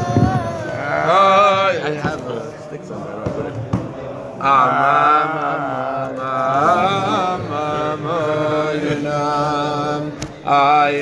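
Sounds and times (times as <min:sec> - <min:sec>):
men singing slow melody: 0:00.4 - 0:02.4, 0:04.4 - 0:11.0.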